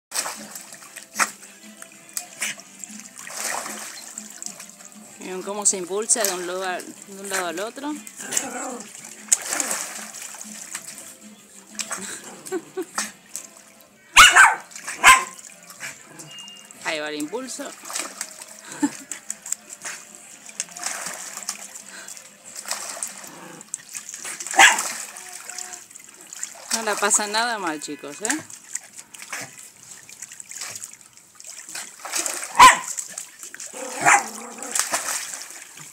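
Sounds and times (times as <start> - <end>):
dog sloshing through water: 0.1 - 35.9
water splashes: 0.1 - 35.9.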